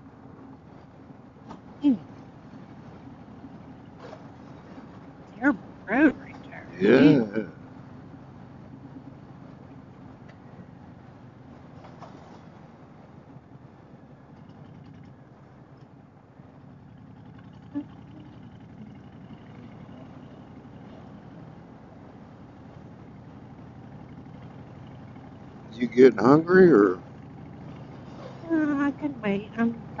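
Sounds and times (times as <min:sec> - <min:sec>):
road and wind noise: 0:00.0 - 0:30.0
motorcycle engine running: 0:16.5 - 0:30.0.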